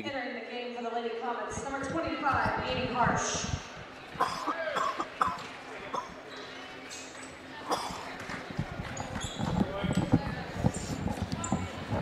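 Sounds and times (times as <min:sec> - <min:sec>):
crowd chatter: 0:01.5 - 0:12.0
sneaker squeaks: 0:06.3 - 0:07.5, 0:08.8 - 0:11.9.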